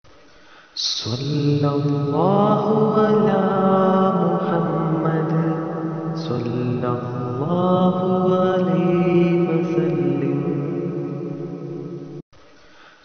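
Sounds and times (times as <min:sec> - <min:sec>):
person chanting: 0:00.8 - 0:12.2.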